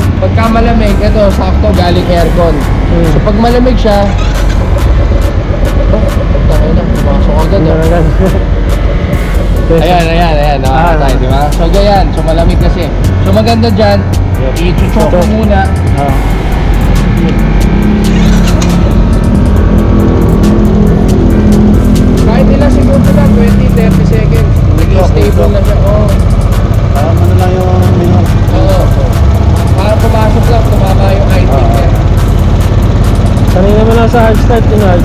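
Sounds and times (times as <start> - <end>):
motorcycle engine idling: 0.0 - 35.0.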